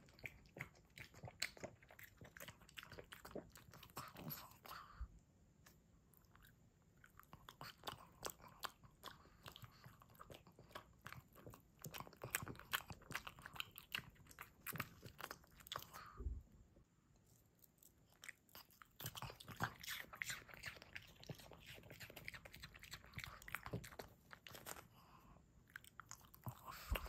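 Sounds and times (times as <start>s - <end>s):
dog chewing and smacking: 0.0s - 5.0s, 6.1s - 16.4s, 17.6s - 27.0s.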